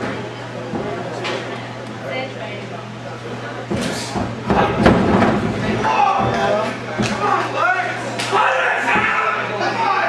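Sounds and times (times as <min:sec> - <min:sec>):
crowd shouting and chatter: 0:00.0 - 0:10.0.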